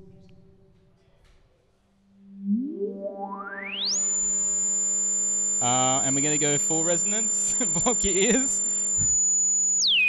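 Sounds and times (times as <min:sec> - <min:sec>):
low buzzy synthesizer tone: 0:02.0 - 0:10.0
rising synthesizer whistle: 0:02.2 - 0:10.0.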